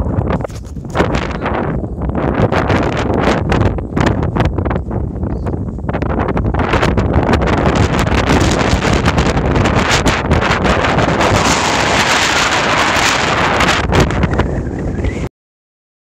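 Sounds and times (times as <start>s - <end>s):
wind buffeting microphone: 0.0s - 15.3s.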